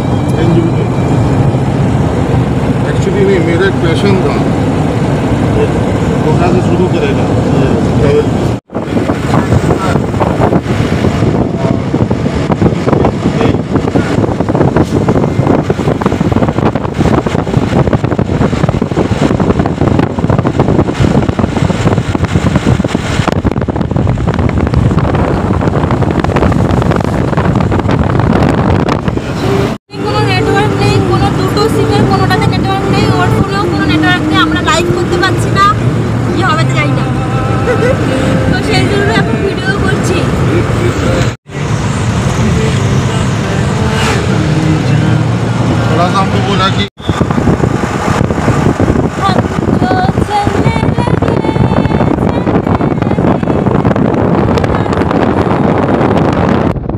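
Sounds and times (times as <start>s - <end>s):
low engine hum: 0.0s - 56.9s
road and wind noise: 0.0s - 56.9s
woman talking: 29.9s - 40.4s, 49.2s - 53.7s.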